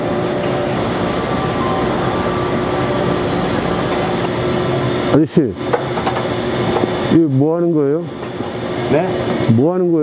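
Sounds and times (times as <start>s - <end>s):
furnace machine noise: 0.0s - 10.0s.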